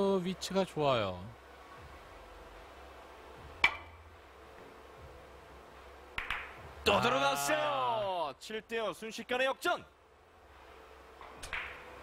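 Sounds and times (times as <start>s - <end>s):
cue striking billiard ball: 6.2s - 6.6s, 11.4s - 11.9s.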